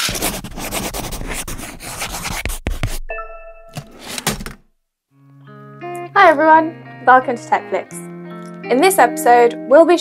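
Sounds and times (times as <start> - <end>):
scratchy rustling noise: 0.0 - 3.1, 3.8 - 4.4.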